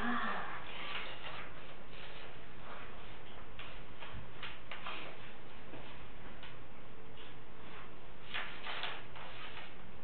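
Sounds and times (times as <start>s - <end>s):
room noise hiss: 0.0s - 10.0s.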